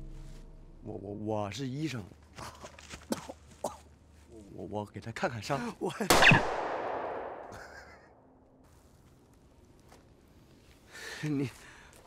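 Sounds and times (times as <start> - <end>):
gunshot with echo: 6.1 - 7.7.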